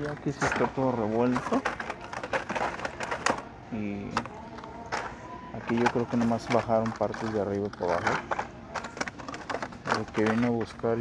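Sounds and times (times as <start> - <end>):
plastic and cardboard crinkling: 0.0 - 11.0.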